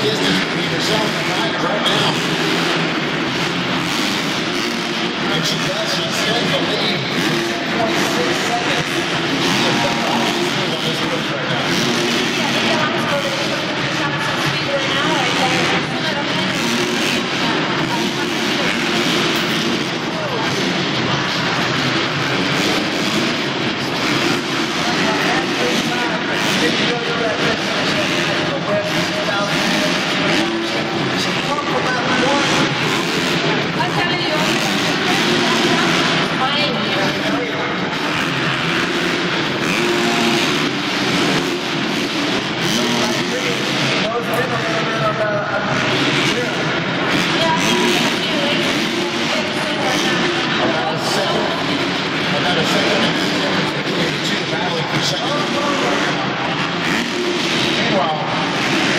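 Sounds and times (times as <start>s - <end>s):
crowd hubbub: 0.0s - 58.9s
motocross bike engines revving: 0.0s - 58.9s.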